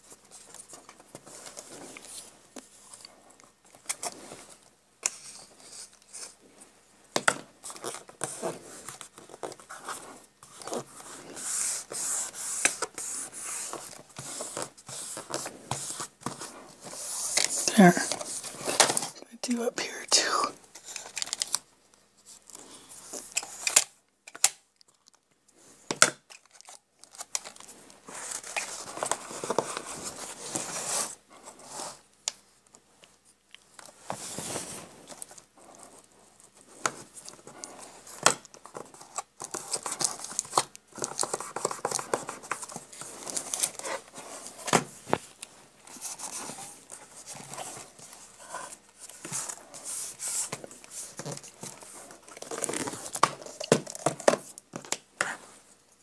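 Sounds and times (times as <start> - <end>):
paper rustling and crinkling: 7.6 - 19.2, 20.7 - 56.0.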